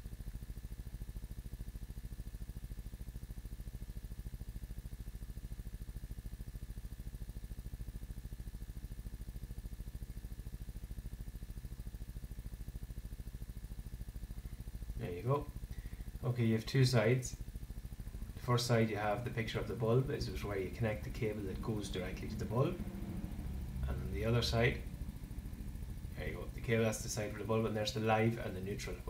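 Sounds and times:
low pulsing hum: 0.0 - 29.0.

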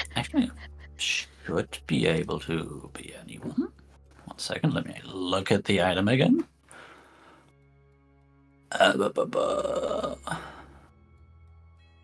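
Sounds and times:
faint background music: 0.0 - 12.0.

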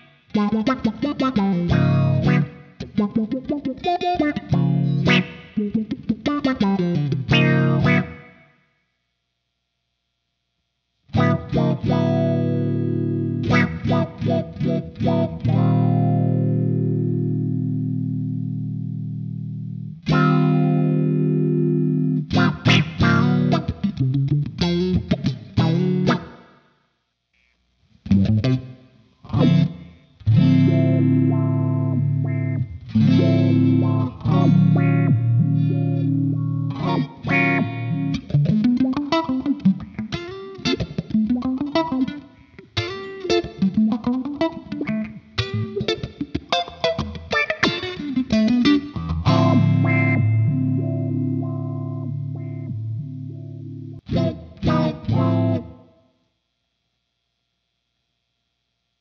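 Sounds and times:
electric guitar with filter sweeps: 0.0 - 8.6, 11.0 - 26.6, 27.4 - 56.0.

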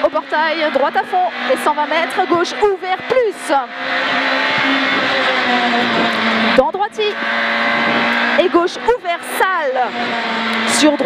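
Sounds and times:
rally car engine running hard: 0.0 - 11.0.

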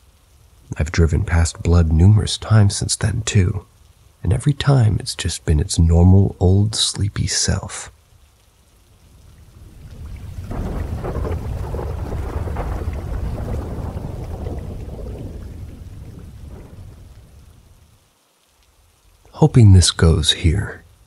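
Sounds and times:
rain: 0.0 - 21.0
rolling thunder: 9.5 - 17.9.

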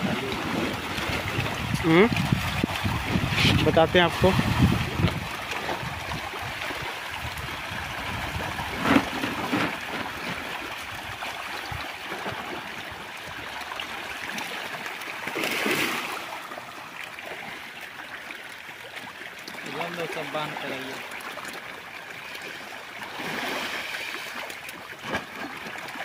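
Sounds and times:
fish splashing in water: 0.0 - 26.0.

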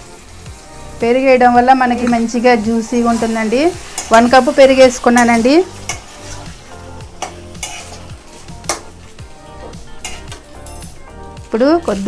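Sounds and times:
chicken sizzling in hot oil: 0.0 - 12.0
metal spatula scraping pan: 2.0 - 11.0.

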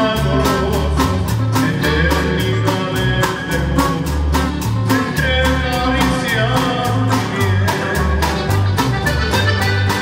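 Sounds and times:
button accordion melody: 0.0 - 10.0
drum kit steady beat: 0.0 - 10.0
guitars: 0.0 - 10.0
low bass notes: 0.0 - 10.0.

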